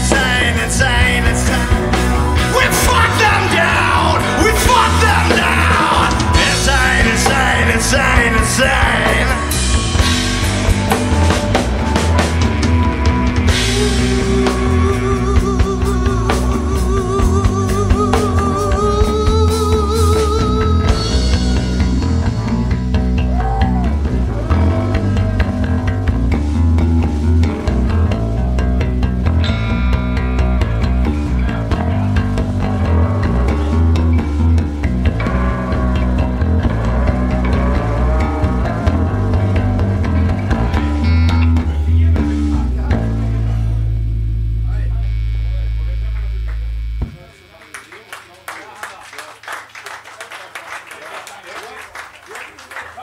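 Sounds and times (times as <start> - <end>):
electric bass: 0.0 - 48.5
rock band playing: 0.0 - 50.1
audience clapping and cheering: 22.4 - 25.0, 46.0 - 53.0.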